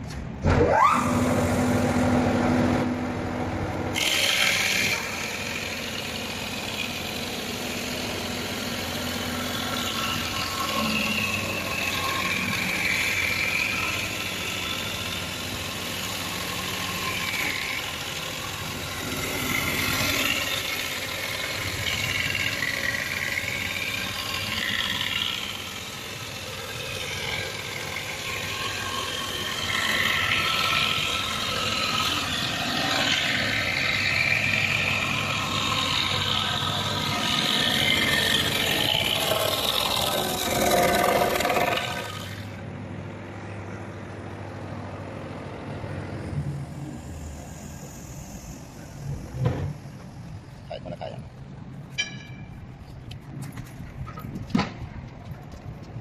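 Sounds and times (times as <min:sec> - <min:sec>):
woodworking machine whining: 0:00.4 - 0:51.1.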